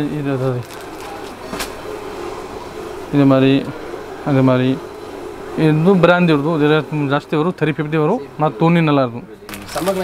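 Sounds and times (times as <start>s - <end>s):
low background hum: 0.0s - 10.0s.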